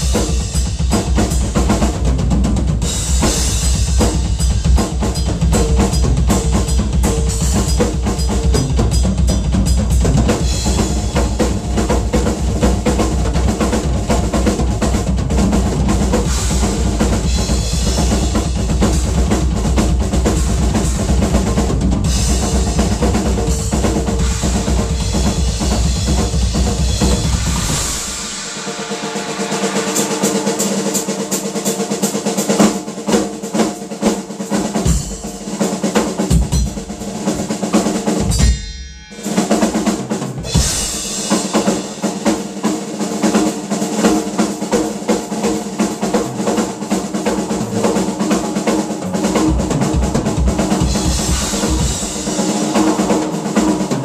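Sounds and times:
snare drum: 0.0 - 38.4, 39.2 - 54.0
cymbals: 0.0 - 54.0
rapid bass drum strokes: 0.0 - 54.0.

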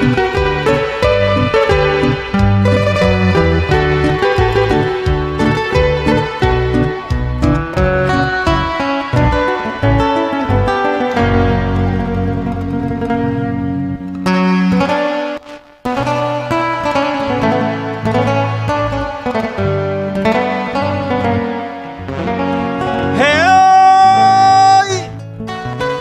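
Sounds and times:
live cumbia band: 0.0 - 13.4, 22.4 - 25.0
person singing: 23.1 - 25.2.

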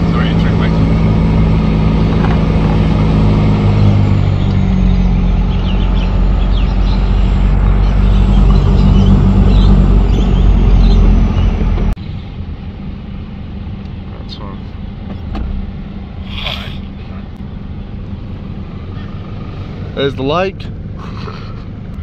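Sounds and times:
engine and road noise inside vehicle: 0.0 - 22.0.

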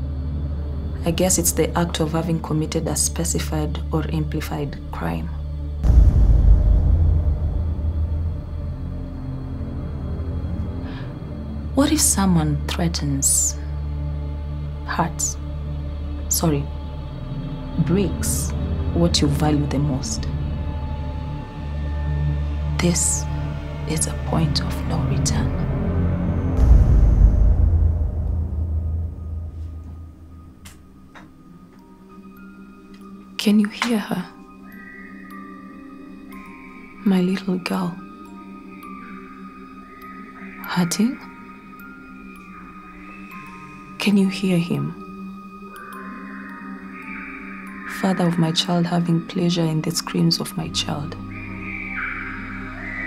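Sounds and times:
sustained low drone: 5.2 - 32.1
deep low boom: 5.8 - 10.6, 26.5 - 31.0.

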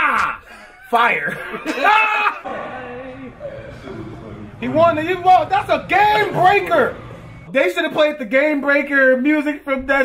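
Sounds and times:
man shouting excitedly: 0.0 - 0.4.

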